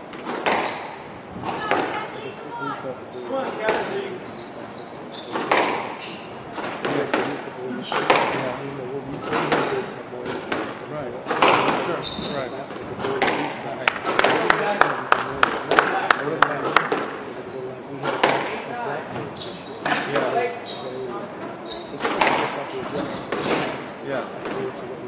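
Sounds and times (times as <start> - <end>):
shoes squeaking on wooden floor: 0.0 - 7.1, 7.7 - 10.4, 11.0 - 15.0, 16.4 - 17.8, 18.5 - 24.7
racquet strikes cracking: 0.1 - 2.0, 5.3 - 8.4, 9.3 - 11.9, 13.1 - 14.8, 22.0 - 22.6.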